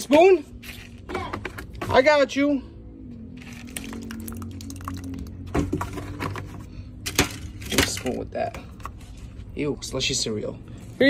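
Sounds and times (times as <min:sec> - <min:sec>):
milk pouring into cereal: 0:03.6 - 0:05.3.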